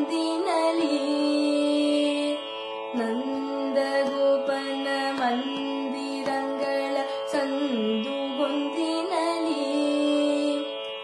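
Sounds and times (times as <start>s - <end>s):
woman singing classical vocal: 0.0s - 10.8s.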